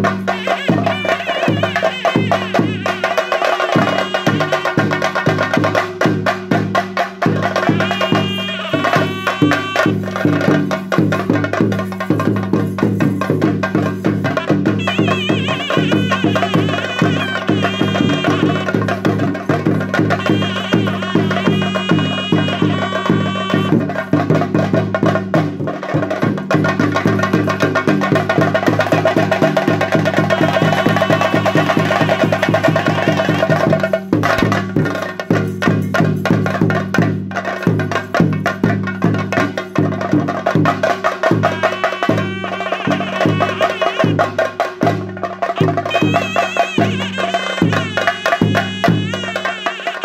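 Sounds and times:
rapid drumming: 0.0s - 50.0s
wavering high melody: 0.4s - 5.1s, 7.6s - 10.4s, 14.0s - 19.0s, 20.1s - 23.8s, 41.4s - 44.3s, 45.6s - 50.0s.

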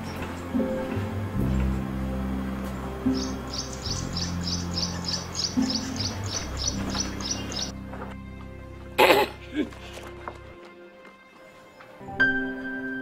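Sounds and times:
background music low tones: 0.0s - 13.0s
small bird chirping rapidly: 3.1s - 7.7s.

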